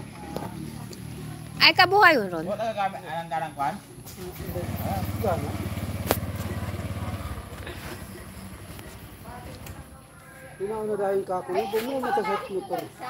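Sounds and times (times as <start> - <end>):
motorcycle engine puttering: 4.0 - 10.2.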